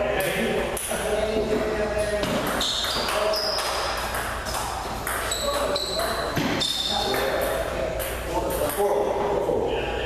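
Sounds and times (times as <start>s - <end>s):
people talking: 0.0s - 10.0s
sneakers squeaking on floor: 2.2s - 7.5s.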